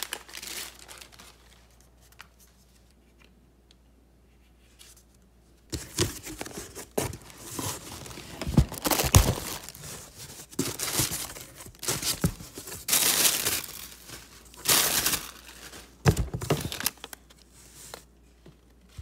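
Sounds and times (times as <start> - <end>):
packaging rustling and tearing: 0.0 - 2.3, 5.7 - 18.0.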